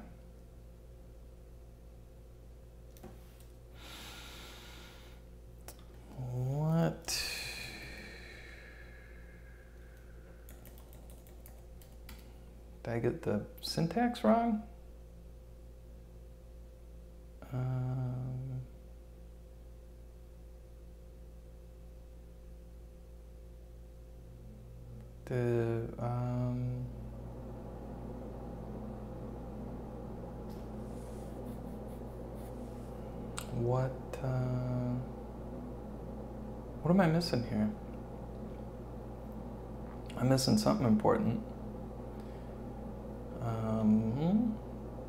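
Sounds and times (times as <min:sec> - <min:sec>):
faint room hum: 0:00.0 - 0:45.0
computer keyboard keys clicking: 0:10.5 - 0:12.3.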